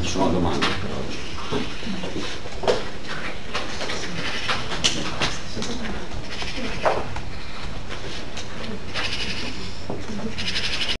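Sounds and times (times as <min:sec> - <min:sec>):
faint low murmur: 0:00.0 - 0:11.0.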